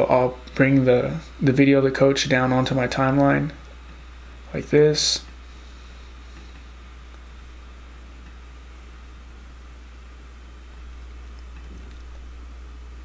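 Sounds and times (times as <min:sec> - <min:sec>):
faint hiss: 0:00.0 - 0:13.0
low hum: 0:00.0 - 0:13.0.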